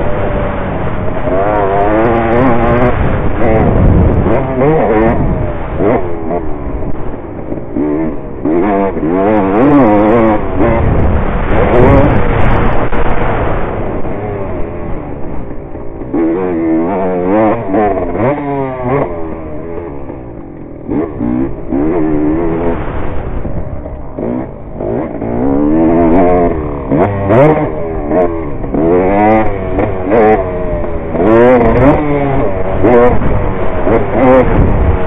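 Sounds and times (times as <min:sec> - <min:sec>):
dirt bike engine revving: 0:00.0 - 0:35.0.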